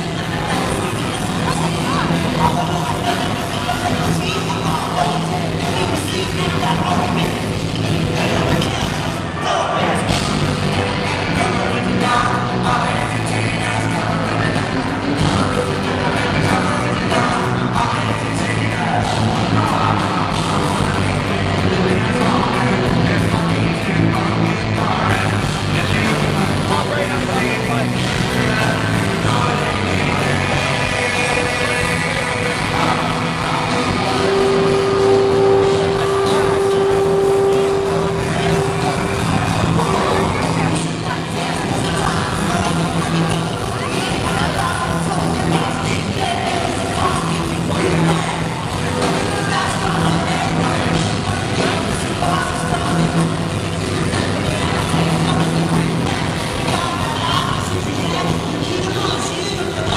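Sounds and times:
rock band playing live: 0:00.0 - 0:59.9
held low bass note: 0:32.4 - 0:41.1.

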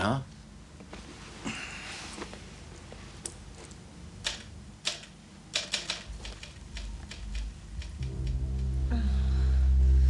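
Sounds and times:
typewriter keys striking: 0:04.3 - 0:07.9.

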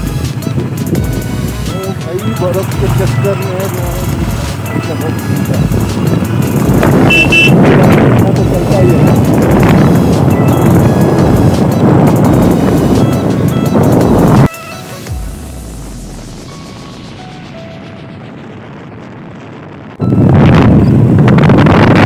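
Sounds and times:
motorcycle engine running: 0:00.0 - 0:14.5
wind rush on microphone: 0:00.0 - 0:14.5, 0:17.1 - 0:22.0
background music: 0:00.0 - 0:18.8.

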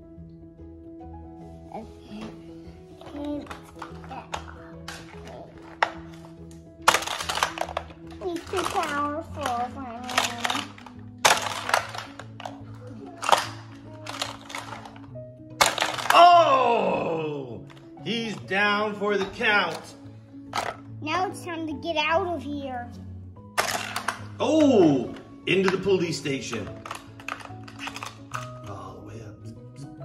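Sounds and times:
background music: 0:00.0 - 0:30.0
plastic toy clacks: 0:06.9 - 0:12.6, 0:13.2 - 0:16.2, 0:26.5 - 0:28.6
child's wordless vocal play: 0:08.2 - 0:10.7, 0:21.0 - 0:22.9.

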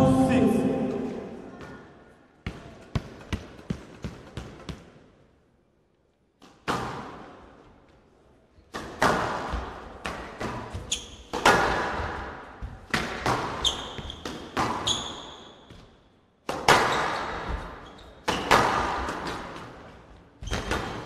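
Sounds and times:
squash ball cracking off walls: 0:08.7 - 0:14.9
shoes squeaking on court floor: 0:10.7 - 0:11.5, 0:13.4 - 0:16.0, 0:16.8 - 0:18.8, 0:20.3 - 0:21.0.

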